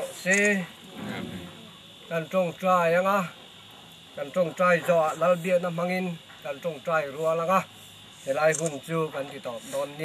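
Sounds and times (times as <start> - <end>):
high insect chirring: 0.0 - 10.0.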